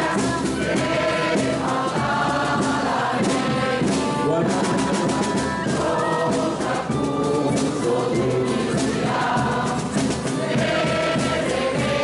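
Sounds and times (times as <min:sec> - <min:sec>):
crowd singing in chorus: 0:00.0 - 0:12.0.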